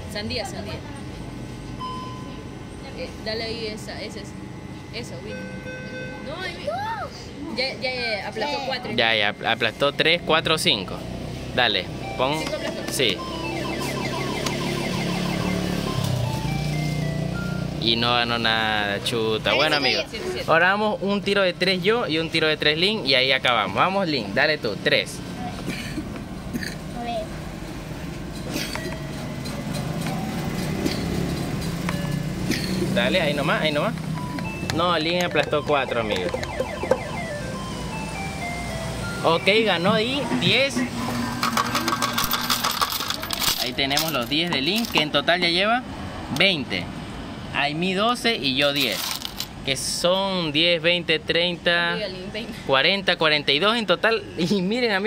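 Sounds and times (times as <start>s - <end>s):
coin hopper motor humming: 9.0s - 18.5s, 33.2s - 45.0s, 48.7s - 49.5s
slot machine electronic beeps: 11.9s - 18.0s, 34.1s - 43.8s
coins clattering into metal tray: 41.4s - 45.0s, 48.7s - 49.5s.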